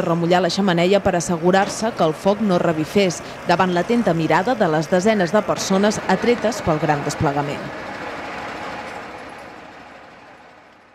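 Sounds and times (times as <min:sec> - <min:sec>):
outdoor street background noise: 0:00.0 - 0:10.9.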